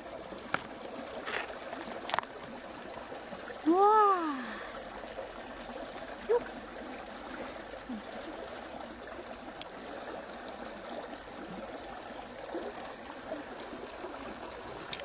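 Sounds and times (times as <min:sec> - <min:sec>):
running water trickling: 0:00.0 - 0:15.0.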